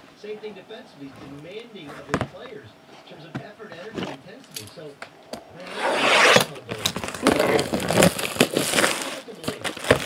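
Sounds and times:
plastic wrap ripping: 0:05.7 - 0:10.0
plastic crackling and crinkling: 0:06.4 - 0:10.0.

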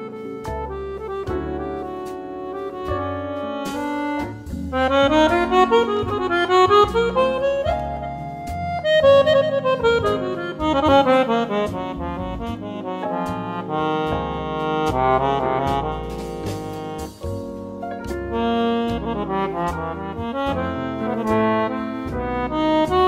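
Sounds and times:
accordion playing a jazz ballad: 0:00.0 - 0:23.0.

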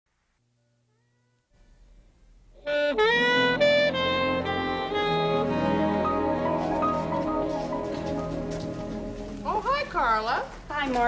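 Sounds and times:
orchestral strings: 0:02.7 - 0:09.8.

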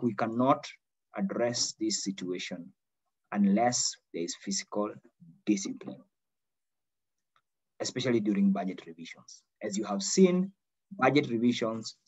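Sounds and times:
man speaking: 0:03.3 - 0:06.1, 0:07.8 - 0:12.0.

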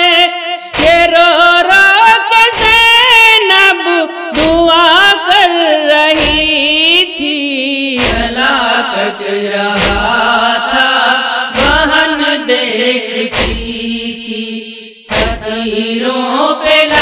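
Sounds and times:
woman chanting a lament: 0:00.0 - 0:17.0
sharp beat: 0:00.8 - 0:01.2, 0:06.1 - 0:06.6, 0:08.0 - 0:08.4, 0:09.8 - 0:10.2, 0:11.6 - 0:12.0, 0:13.3 - 0:13.8, 0:15.1 - 0:15.5.

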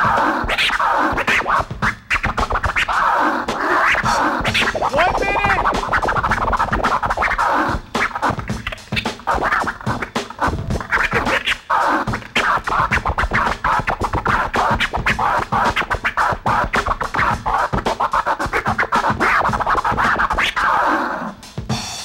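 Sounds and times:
turntable scratching: 0:00.0 - 0:21.8.

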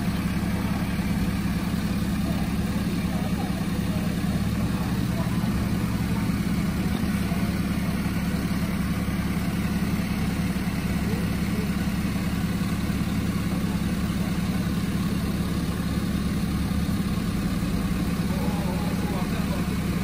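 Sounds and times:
truck engine idling: 0:00.0 - 0:20.0.

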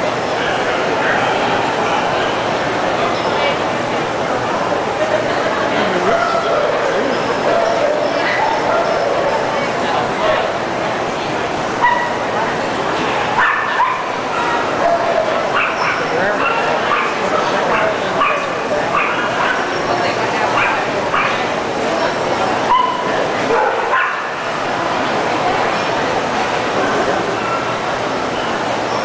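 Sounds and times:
crowd chatter: 0:00.0 - 0:29.0
dogs barking: 0:07.4 - 0:09.4, 0:11.8 - 0:12.2, 0:13.4 - 0:19.8, 0:20.5 - 0:21.5, 0:22.7 - 0:24.5.

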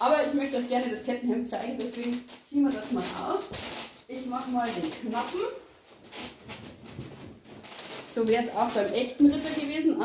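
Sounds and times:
cloth rustling: 0:00.3 - 0:10.0.

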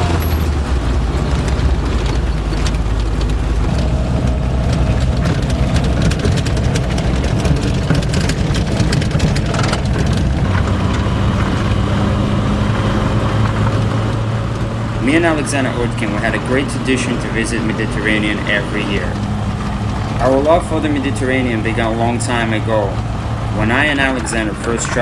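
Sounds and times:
car engine hum: 0:00.0 - 0:25.0
road noise: 0:00.0 - 0:25.0
small knocks and rattles: 0:00.3 - 0:11.9.

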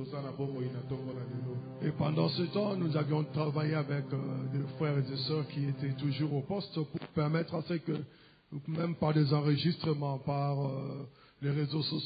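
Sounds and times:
soft music of held chords: 0:00.0 - 0:08.0
man's voice: 0:00.0 - 0:12.0.

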